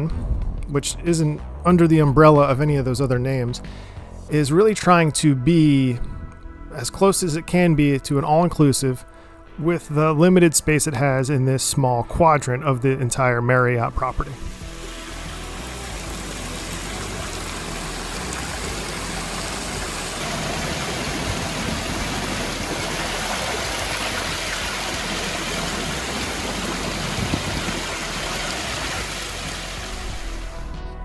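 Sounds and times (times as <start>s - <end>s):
fountain water splashing: 14.4s - 30.5s.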